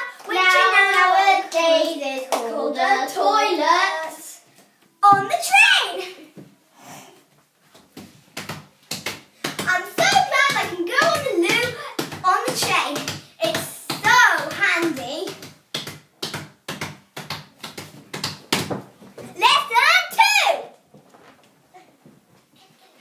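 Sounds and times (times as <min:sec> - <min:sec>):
girl talking: 0:00.0 - 0:04.4, 0:05.0 - 0:06.3, 0:19.3 - 0:20.8.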